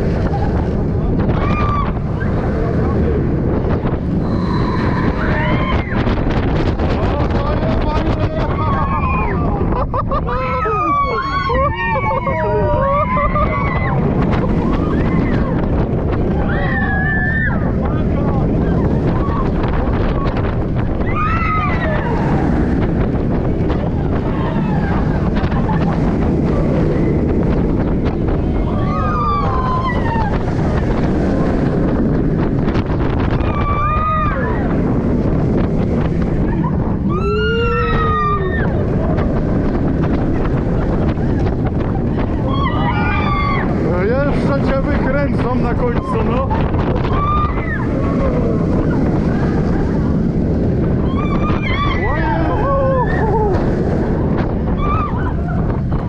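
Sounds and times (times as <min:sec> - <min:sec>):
riders screaming and whooping: 0:00.0 - 0:56.0
roller coaster rumbling on track: 0:00.0 - 0:56.0
wind buffeting microphone: 0:00.0 - 0:56.0.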